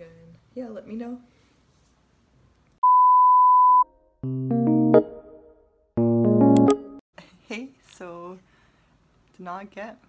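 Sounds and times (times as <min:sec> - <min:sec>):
high electronic beep: 0:02.8 - 0:03.9.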